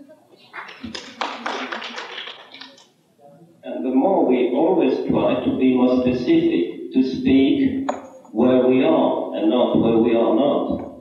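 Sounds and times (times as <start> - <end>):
audience applause: 0.5 - 2.8.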